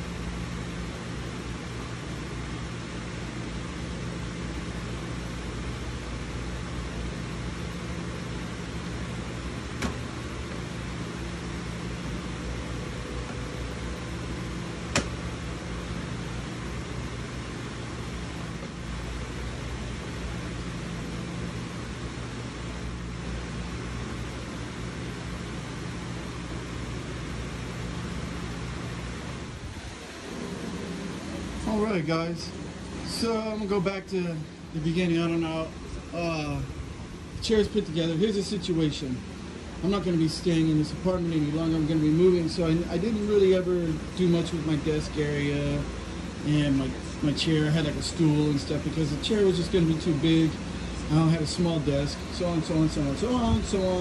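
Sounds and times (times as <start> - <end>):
machine humming and hissing: 0.0 - 54.0.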